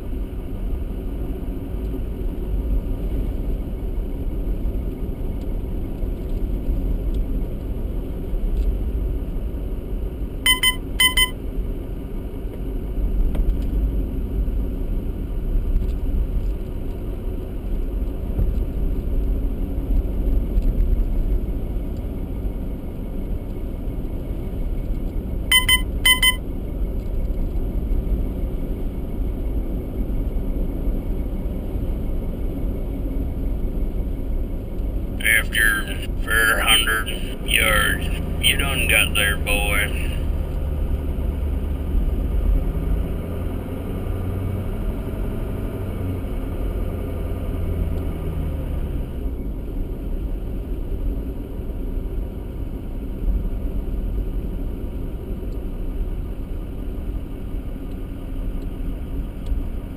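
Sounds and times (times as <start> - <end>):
car engine and tyres rumbling: 0.0 - 59.9
electronic beep: 10.5 - 11.4, 25.5 - 26.4.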